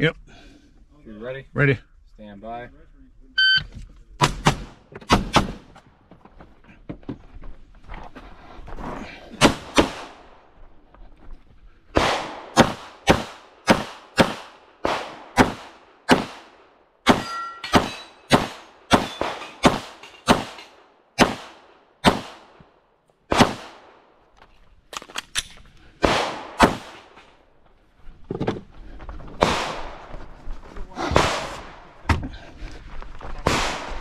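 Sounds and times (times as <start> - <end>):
pistol shots: 9.4 - 10.3, 12.0 - 22.6, 23.3 - 24.0, 26.0 - 27.2, 29.4 - 30.1, 33.4 - 34.0.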